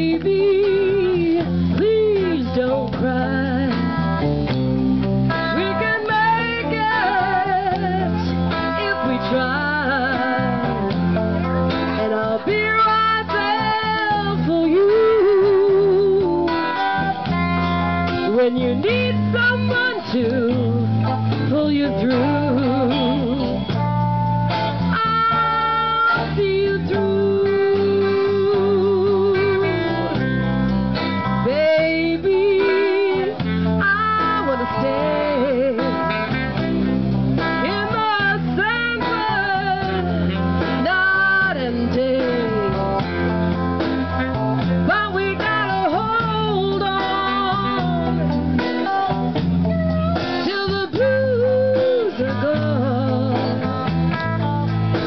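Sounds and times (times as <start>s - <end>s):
live blues band playing: 0.0s - 55.0s.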